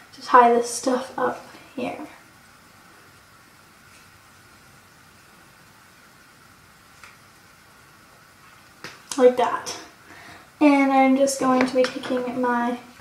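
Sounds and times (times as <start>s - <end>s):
room tone hiss: 0.0s - 13.0s.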